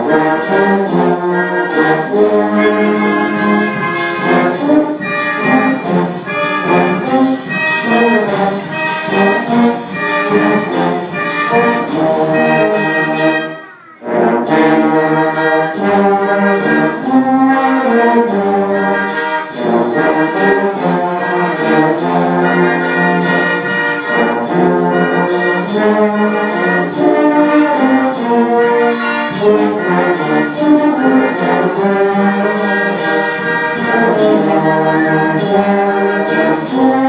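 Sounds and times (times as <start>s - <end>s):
brass band playing: 0.0s - 37.0s
steady drum beat: 0.0s - 37.0s.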